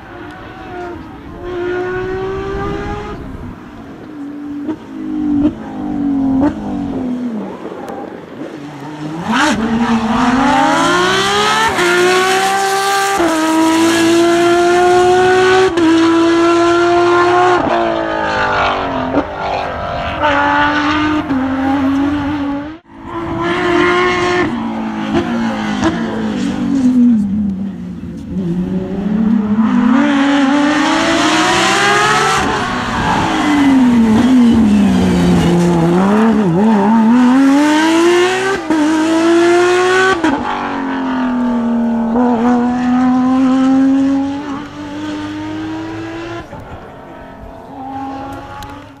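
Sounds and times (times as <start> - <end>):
rally car engine at full revs: 0.0 - 49.0.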